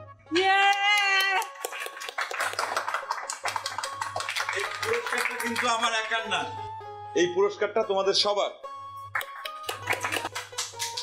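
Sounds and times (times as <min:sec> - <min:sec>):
people clapping: 0:00.6 - 0:06.3, 0:09.1 - 0:11.0.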